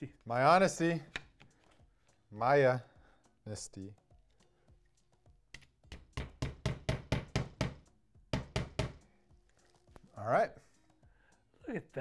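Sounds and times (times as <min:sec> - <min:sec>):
hammer striking a nail: 0:05.9 - 0:09.0.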